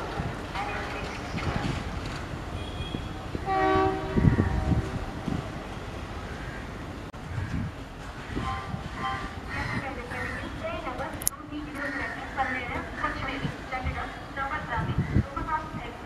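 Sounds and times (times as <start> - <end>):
crowded station platform noise: 0.0 - 16.0
diesel locomotive horn blast: 2.6 - 5.4, 8.4 - 9.3.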